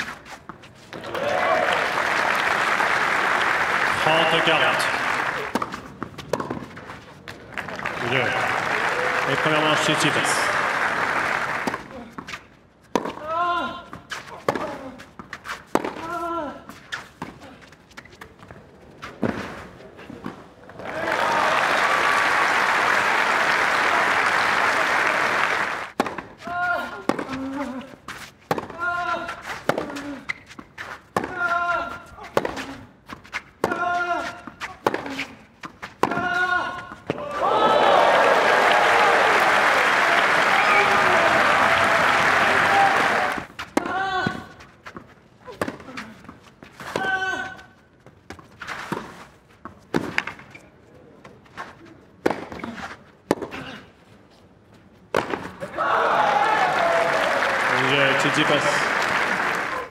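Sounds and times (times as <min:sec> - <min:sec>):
crowd applause: 0:01.0 - 0:05.6, 0:07.5 - 0:11.9, 0:20.7 - 0:26.0, 0:37.3 - 0:43.5, 0:55.6 - 0:59.9
racket hitting tennis ball: 0:05.4 - 0:06.9, 0:11.6 - 0:13.3, 0:13.9 - 0:17.3, 0:25.9 - 0:37.4, 0:43.3 - 0:47.2, 0:49.9 - 0:50.5, 0:52.2 - 0:53.8, 0:55.1 - 0:55.7.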